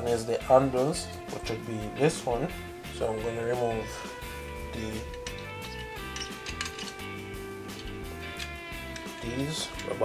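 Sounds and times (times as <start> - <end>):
background music with held notes: 0.0 - 10.0
light clicks of rig parts: 5.0 - 10.0.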